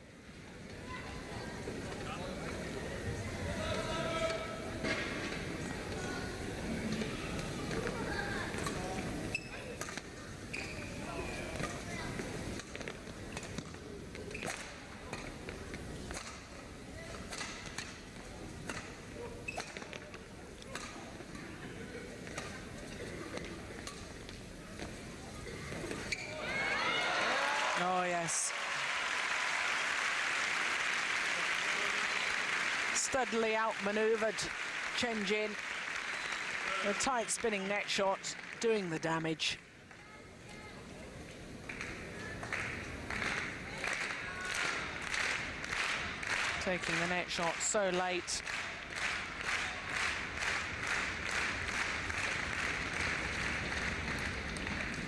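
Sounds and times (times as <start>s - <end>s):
crowd murmur and voices: 0.0s - 28.8s, 29.4s - 55.0s.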